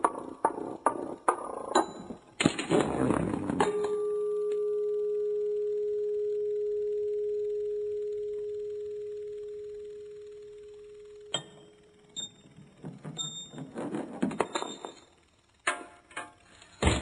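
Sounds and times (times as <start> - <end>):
pure steady tone: 1.8 - 16.7.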